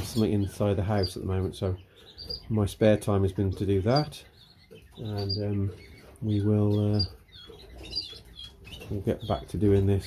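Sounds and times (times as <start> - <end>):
cage birds chirping: 0.0 - 10.0.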